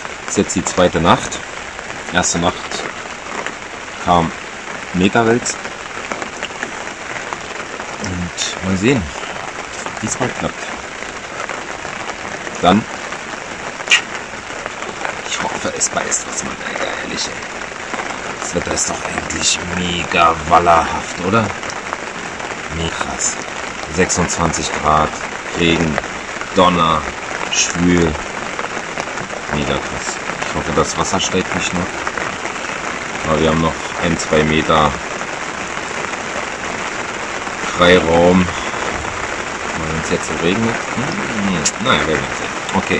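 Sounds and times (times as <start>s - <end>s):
heavy rain falling: 0.0s - 42.9s.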